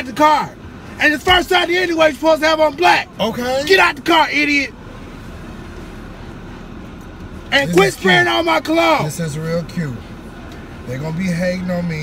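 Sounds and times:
car engine idling inside cabin: 0.0 - 12.0.

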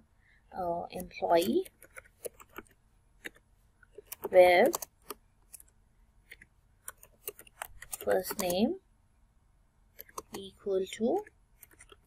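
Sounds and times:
keyboard keystroke clicks: 4.0 - 5.2.

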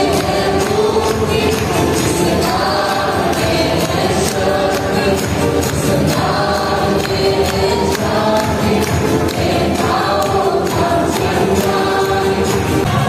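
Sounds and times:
group singing worship music: 0.0 - 13.0.

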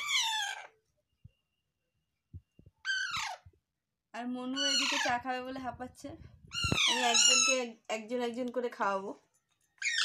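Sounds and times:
parakeet squawking: 0.0 - 0.8, 2.8 - 3.5, 4.5 - 5.5, 6.5 - 7.7, 9.8 - 10.0.

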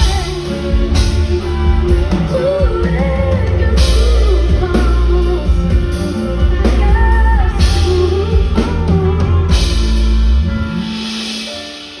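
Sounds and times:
live pop-rock band playing: 0.0 - 12.0.

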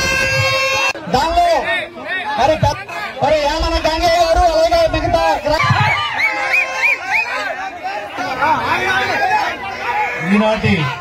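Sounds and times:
men shouting and chattering: 0.0 - 11.0.

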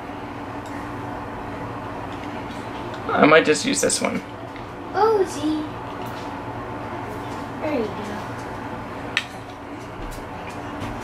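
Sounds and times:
air conditioner hum: 0.0 - 11.0.

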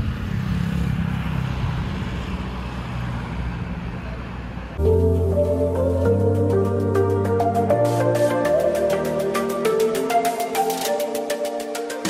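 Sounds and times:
music with tinkling beat: 4.8 - 12.0.

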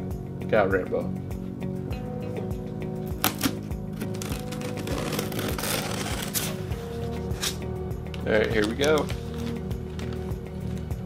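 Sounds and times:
background music: 0.0 - 11.0
cardboard box rustling: 4.0 - 7.6.

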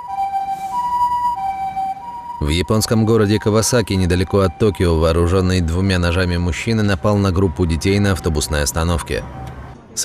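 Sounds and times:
two-tone ambulance siren: 0.0 - 9.8.

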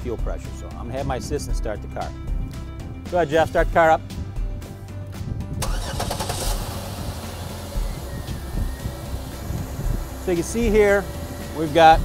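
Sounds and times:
car engine starting and idling: 5.5 - 12.0.

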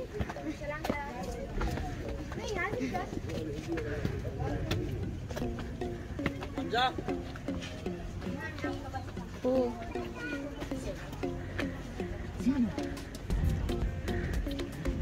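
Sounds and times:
people talking: 0.0 - 5.2, 8.2 - 14.2.

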